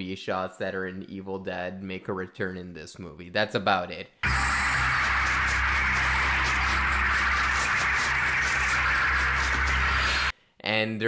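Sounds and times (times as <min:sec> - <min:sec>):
dense hissing drone: 0:04.2 - 0:10.3
low hum: 0:04.2 - 0:10.3.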